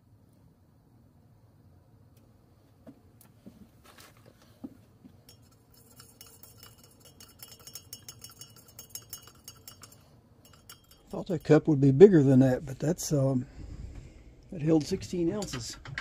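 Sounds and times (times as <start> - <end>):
stir stick clinking in tumbler: 5.2 - 11.7.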